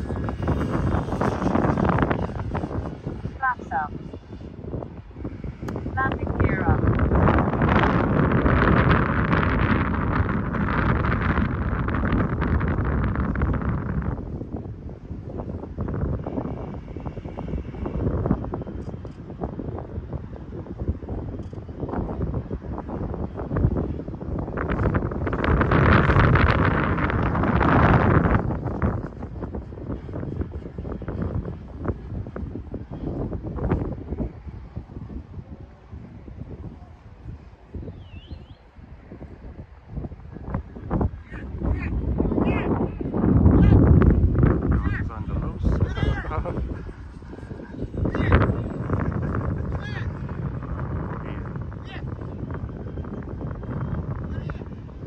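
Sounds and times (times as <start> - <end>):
model plane buzzing overhead: 0.0 - 55.0
wind buffeting microphone: 0.0 - 55.0.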